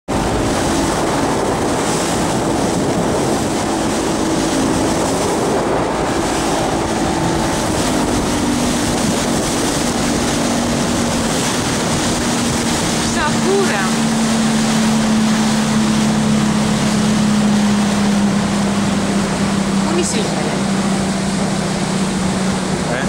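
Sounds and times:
wind rushing: 0.1s - 22.9s
churned water: 0.1s - 23.0s
motorboat engine running: 0.1s - 23.0s.

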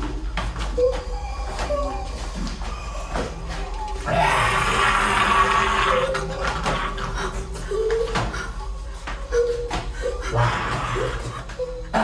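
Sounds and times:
zombie growling and snarling: 4.0s - 7.2s.

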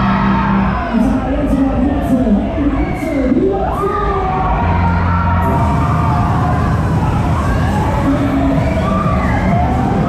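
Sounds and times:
crowd cheering and shouting: 0.0s - 10.0s
fairground music with heavy bass: 0.0s - 10.0s.

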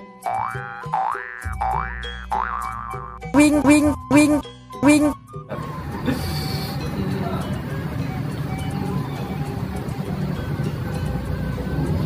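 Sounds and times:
background music: 0.0s - 12.0s
springy cartoon boing: 0.2s - 5.2s
low bass tone: 1.4s - 5.2s.

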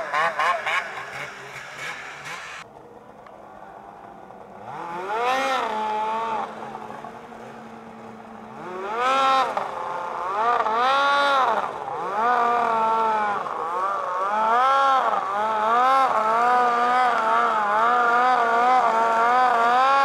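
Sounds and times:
snowmobile engine revving: 0.0s - 2.6s, 4.4s - 20.0s.

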